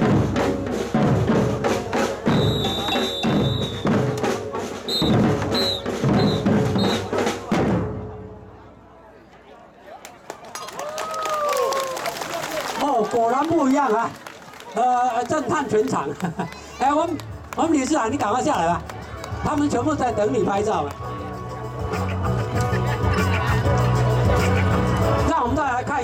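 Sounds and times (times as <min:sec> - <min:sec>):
marching drums: 0:00.0 - 0:08.3
crowd noise: 0:00.0 - 0:26.0.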